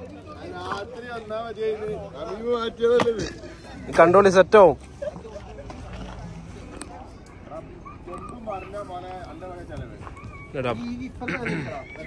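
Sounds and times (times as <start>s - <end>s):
men's voices: 0.0s - 12.0s.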